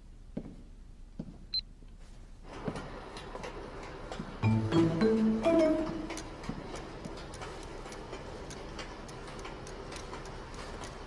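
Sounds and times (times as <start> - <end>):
footsteps on hard floor: 0.3 - 2.9, 5.8 - 7.2.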